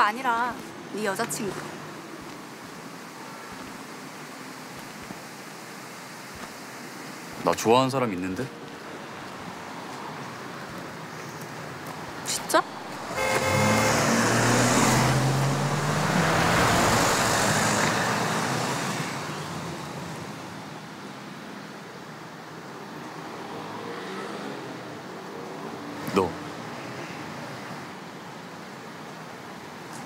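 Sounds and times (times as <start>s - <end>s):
car driving past: 12.7s - 20.5s, 23.3s - 24.9s
car horn: 13.0s - 15.4s.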